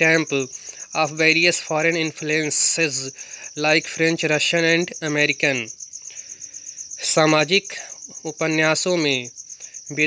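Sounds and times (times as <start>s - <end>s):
man speaking: 0.0s - 5.7s, 7.0s - 9.3s
cricket chirping: 0.0s - 10.0s.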